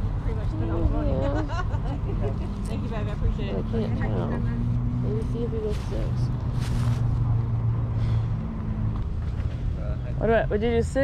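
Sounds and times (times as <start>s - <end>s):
low engine hum: 0.0s - 11.0s
plastic bag rustle: 5.6s - 7.2s.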